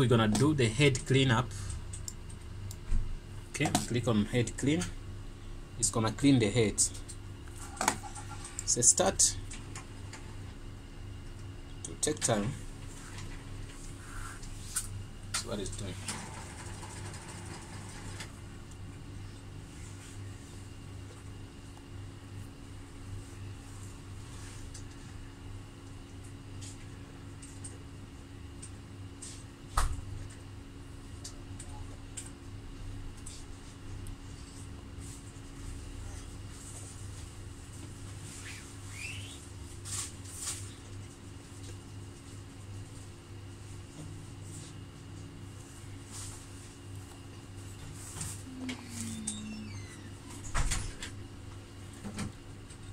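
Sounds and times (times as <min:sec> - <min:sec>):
printer mechanical hum: 0:00.0 - 0:52.9.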